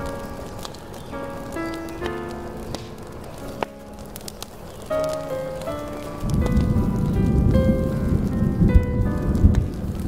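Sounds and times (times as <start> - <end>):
steady rain: 0.0 - 10.0
thunder rumbling: 0.0 - 10.0.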